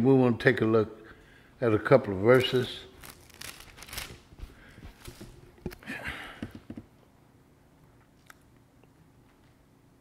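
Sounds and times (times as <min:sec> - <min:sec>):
thin pages turning: 0:02.3 - 0:05.8.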